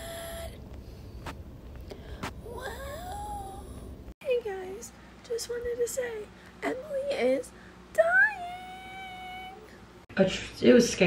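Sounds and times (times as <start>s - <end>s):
hoarse woman singing high note: 0.0s - 0.6s.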